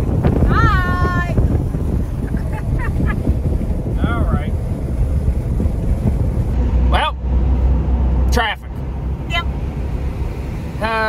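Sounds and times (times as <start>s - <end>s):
road rumble: 0.0s - 11.0s
wind buffeting: 0.0s - 11.0s.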